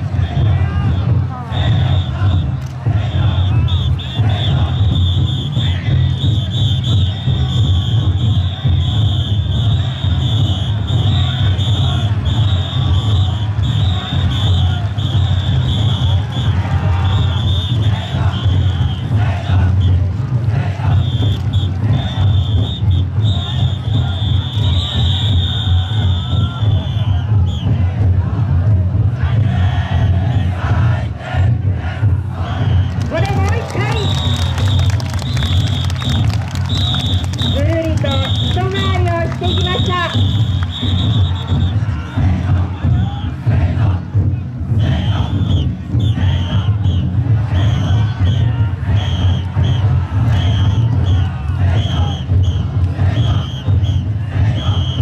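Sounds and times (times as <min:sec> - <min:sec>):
crowd shouting and chanting: 0:00.0 - 0:55.0
taiko drums beating fast: 0:00.0 - 0:55.0.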